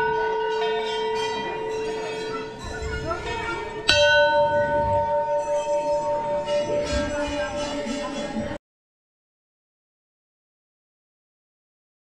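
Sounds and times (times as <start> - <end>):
brass bell struck and ringing: 0.0 - 8.5
earlier bell ringing: 0.0 - 8.6.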